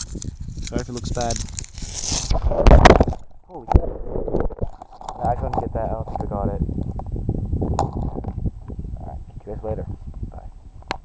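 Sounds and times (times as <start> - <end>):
camera handling rumble: 0.0 - 3.3, 4.3 - 8.8.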